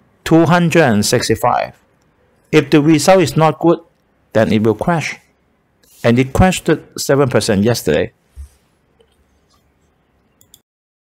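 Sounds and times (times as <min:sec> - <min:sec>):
man speaking: 0:00.2 - 0:01.8, 0:02.5 - 0:08.2
faint click: 0:10.2 - 0:10.6.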